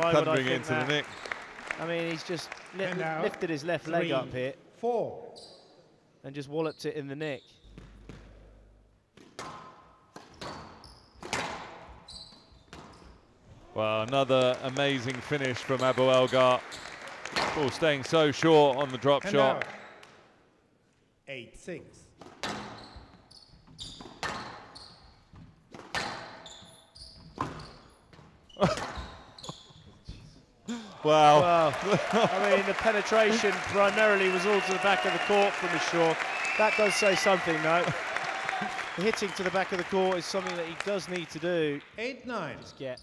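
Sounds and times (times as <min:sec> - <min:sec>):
shoes squeaking on court floor: 0:01.0 - 0:01.4, 0:05.3 - 0:05.8, 0:07.2 - 0:08.6, 0:09.2 - 0:13.6, 0:22.2 - 0:30.6
squash ball hits: 0:09.2 - 0:11.9.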